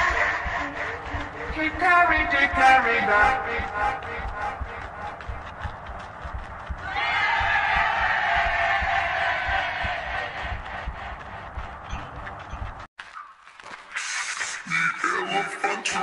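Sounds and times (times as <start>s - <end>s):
rapid low knocks: 0.1s - 12.9s.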